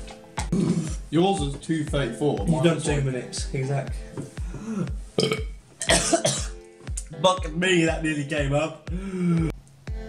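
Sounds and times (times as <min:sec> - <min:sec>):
man belching: 0:00.4 - 0:01.0, 0:05.2 - 0:06.4.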